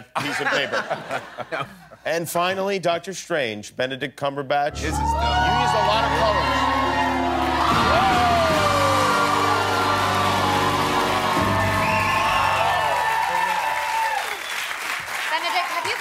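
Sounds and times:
laughter: 0.0s - 2.0s
audience applauding and cheering: 4.7s - 16.0s
music with held notes: 4.8s - 12.4s.

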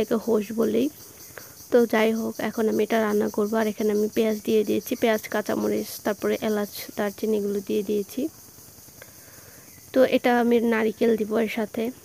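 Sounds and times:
woman talking: 0.0s - 1.0s, 1.7s - 8.3s, 9.9s - 12.0s.

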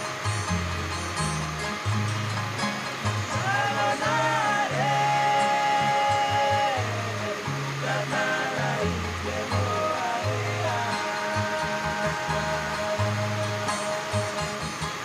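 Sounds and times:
heavy rain hiss: 0.0s - 15.0s
music with melody and bass: 0.0s - 15.0s.

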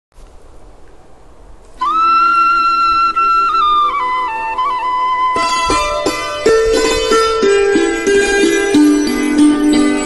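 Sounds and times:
faint hiss: 0.2s - 9.2s
soft lower accompaniment: 0.2s - 10.0s
flute melody: 1.8s - 10.0s.

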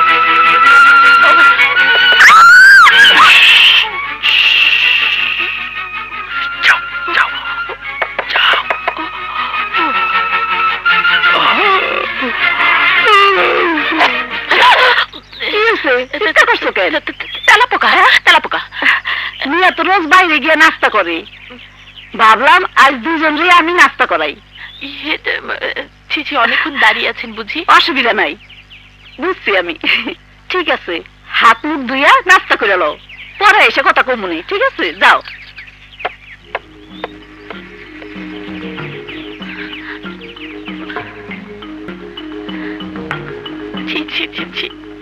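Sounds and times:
background music: 0.0s - 15.2s, 36.4s - 45.0s
chickens clucking: 36.0s - 45.0s.

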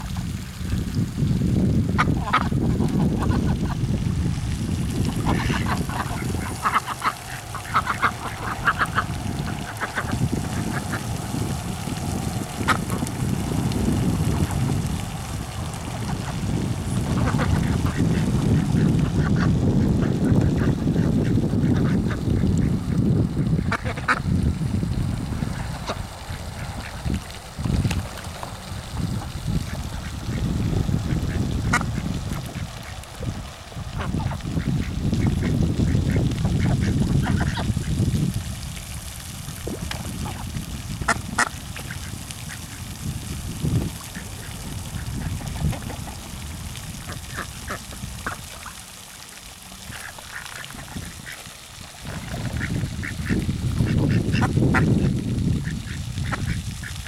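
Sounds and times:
wind rumbling on microphone: 0.0s - 57.0s
ducks quacking: 2.0s - 3.8s, 5.0s - 11.4s, 16.0s - 22.8s, 23.4s - 24.2s, 34.0s - 37.9s, 47.0s - 48.8s, 52.0s - 57.0s.

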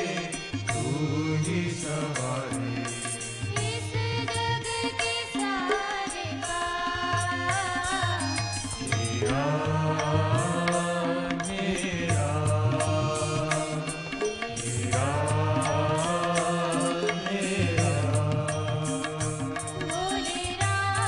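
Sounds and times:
devotional band music: 0.0s - 21.0s
harmonium: 0.0s - 21.0s
tabla: 0.0s - 21.0s.

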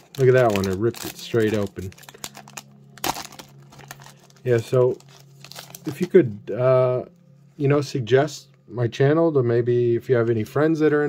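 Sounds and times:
foil wrapper crinkling: 0.0s - 6.2s
sharp foil crackle: 0.0s - 6.2s.

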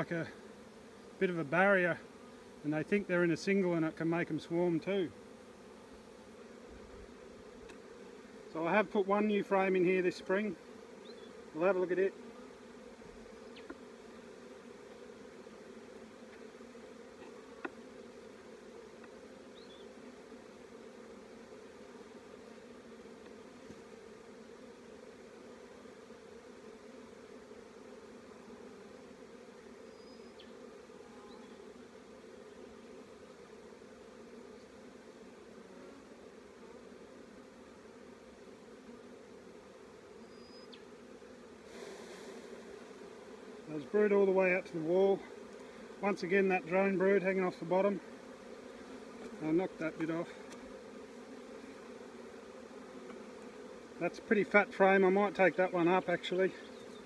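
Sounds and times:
bees buzzing: 0.0s - 57.0s.

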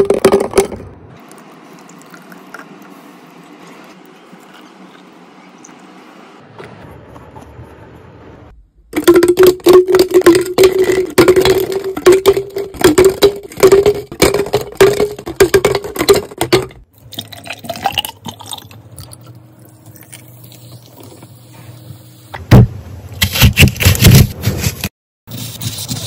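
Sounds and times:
liquid pouring into a glass: 1.3s - 2.7s, 17.1s - 20.6s.

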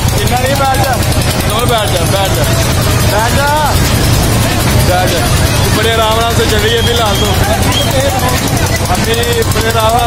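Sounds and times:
ride train rumbling: 0.0s - 10.0s
people calling out: 3.8s - 10.0s.

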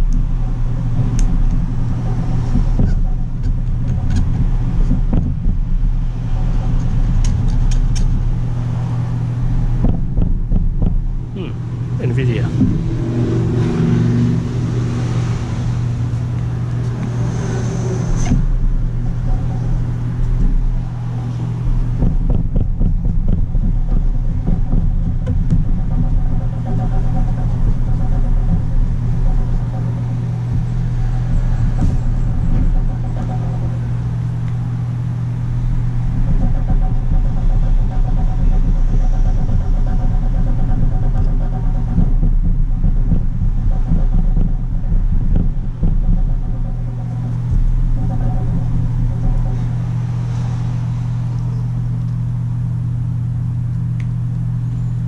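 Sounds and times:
loud low hum: 0.0s - 55.0s.

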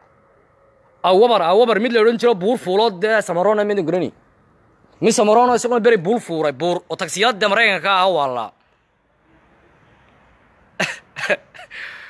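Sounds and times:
man coughing: 10.8s - 11.7s.

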